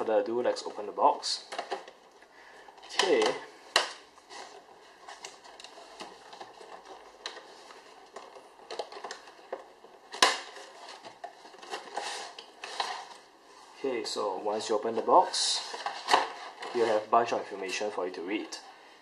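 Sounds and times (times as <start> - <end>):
cardboard and plastic scraping: 2.8 - 13.3, 15.3 - 17.1
sharp snap of packaging: 10.1 - 10.6.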